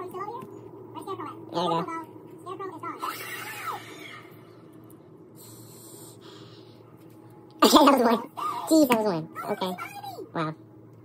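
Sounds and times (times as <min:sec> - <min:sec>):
soft hiss of breath: 0:05.4 - 0:06.8.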